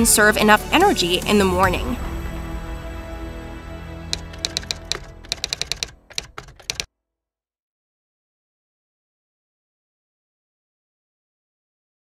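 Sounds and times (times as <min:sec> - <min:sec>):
background music: 0:00.0 - 0:06.9
keyboard keystroke clicks: 0:04.2 - 0:06.9.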